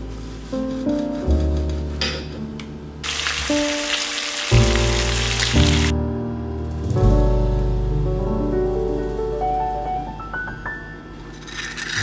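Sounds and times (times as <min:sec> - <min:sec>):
food sizzling in a pan: 0:03.0 - 0:05.9.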